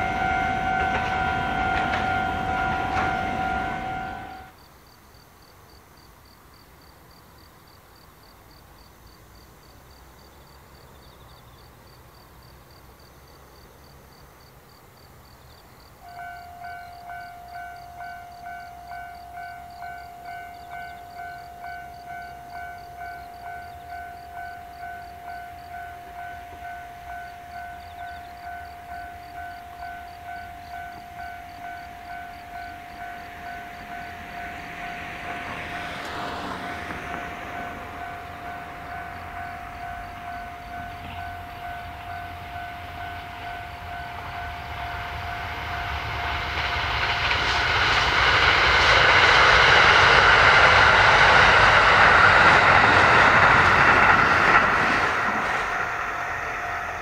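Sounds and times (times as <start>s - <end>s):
level crossing warning bell: 0.0s - 4.6s, 16.0s - 46.1s
diesel train approaching: 0.0s - 5.0s, 6.8s - 57.0s.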